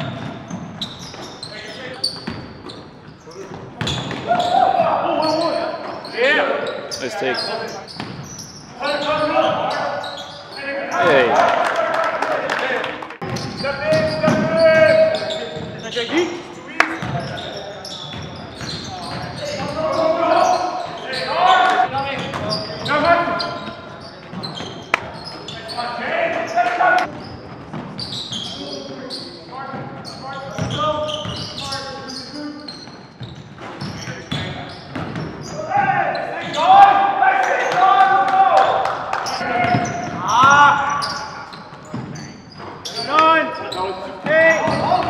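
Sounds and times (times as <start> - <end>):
players calling out: 3.2 - 27.1, 35.4 - 45.0.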